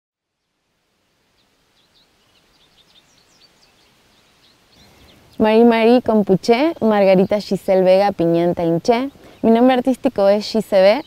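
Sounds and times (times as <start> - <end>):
low hiss: 0.2 - 11.0
birds chirping: 0.4 - 11.0.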